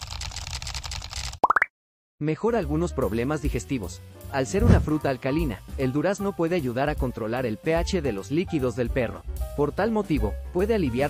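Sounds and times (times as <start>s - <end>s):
rapid small clicks: 0.0s - 1.4s.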